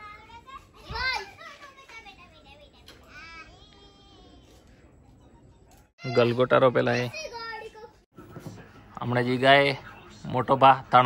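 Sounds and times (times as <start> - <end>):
children's voices playing: 0.0 - 4.3.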